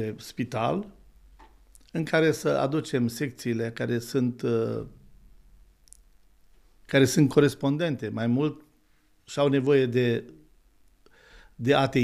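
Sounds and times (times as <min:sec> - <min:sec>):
man speaking: 0:00.0 - 0:01.0, 0:01.8 - 0:05.0, 0:06.9 - 0:08.7, 0:09.3 - 0:10.4, 0:11.6 - 0:12.0.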